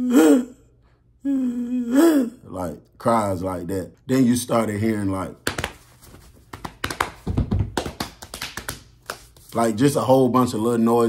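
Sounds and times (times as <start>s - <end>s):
rapid hand taps and thumps: 5.4s - 9.5s.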